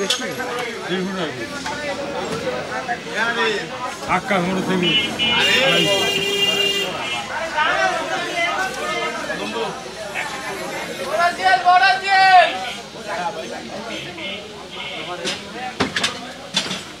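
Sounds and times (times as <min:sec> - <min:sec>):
crowd of people talking: 0:00.0 - 0:17.0.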